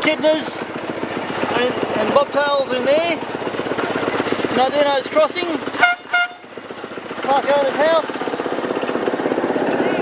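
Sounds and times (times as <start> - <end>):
miniature locomotive running on track: 6.9 - 10.0.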